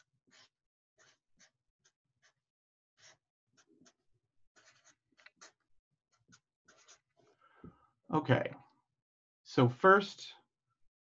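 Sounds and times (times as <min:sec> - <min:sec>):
marker scratching on paper: 0:00.0 - 0:07.3.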